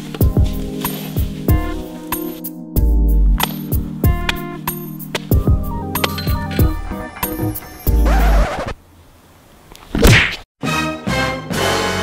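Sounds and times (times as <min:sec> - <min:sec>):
music with sustained chords: 0:00.0 - 0:08.2
loud whack with a swish: 0:09.9 - 0:10.5.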